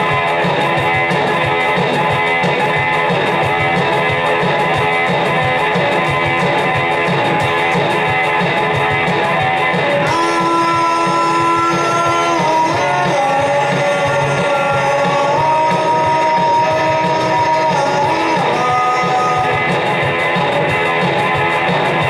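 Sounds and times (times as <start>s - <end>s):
rock music with electric guitar: 0.0s - 22.0s.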